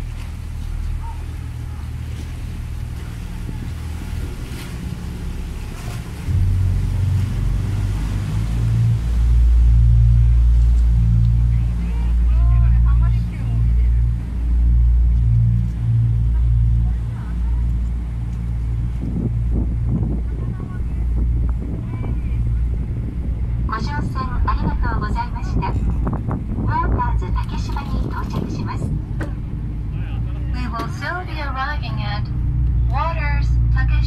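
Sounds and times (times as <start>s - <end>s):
boat engine rumble: 0.0s - 34.0s
wind buffeting microphone: 0.0s - 34.0s.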